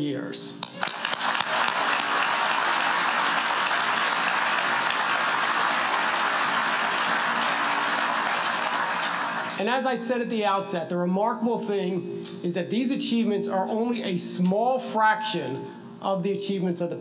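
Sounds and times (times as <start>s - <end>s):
large audience applauding: 0.6s - 9.6s.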